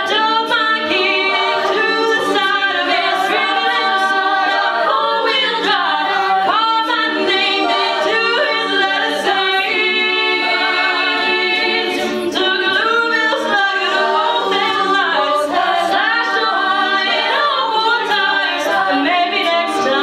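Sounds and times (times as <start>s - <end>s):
backing vocal harmonies: 0.0s - 20.0s.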